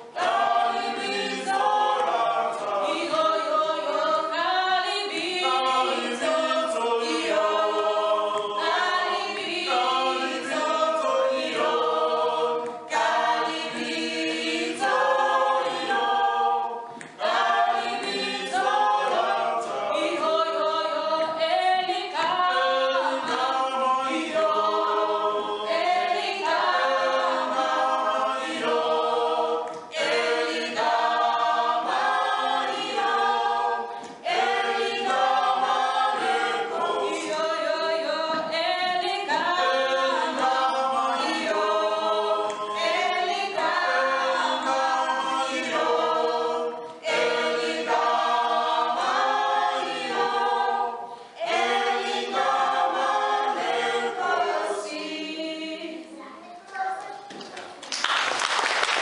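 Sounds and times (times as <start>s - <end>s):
group singing a cappella: 0.0s - 56.3s.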